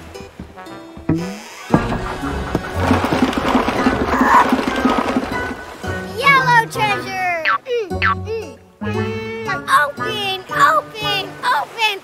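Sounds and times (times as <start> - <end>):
background music: 0.0 - 12.0
rattling sound effect: 1.7 - 5.8.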